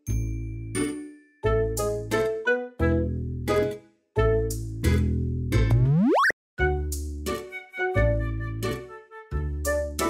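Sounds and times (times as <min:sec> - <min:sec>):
bouncy children's music: 0:00.0 - 0:10.0
rising cartoon sound effect: 0:05.8 - 0:06.4.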